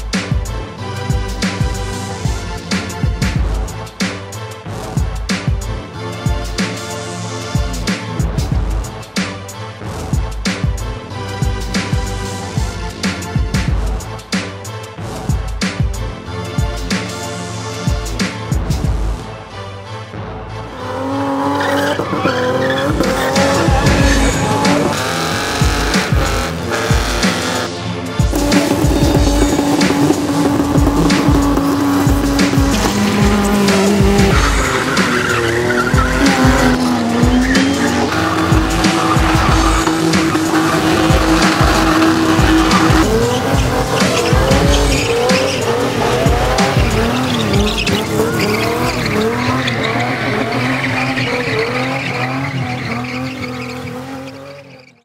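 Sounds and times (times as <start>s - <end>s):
music: 0.0s - 55.0s
car engines at high revs: 20.6s - 55.0s
tyres squealing: 21.5s - 27.7s, 28.3s - 55.0s.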